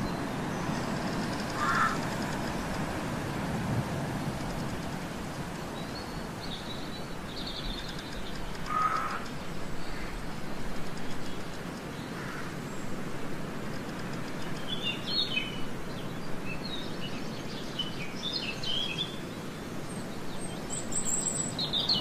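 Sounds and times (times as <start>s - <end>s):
steady background hiss: 0.0s - 22.0s
small birds chirping: 5.5s - 13.0s, 13.7s - 22.0s.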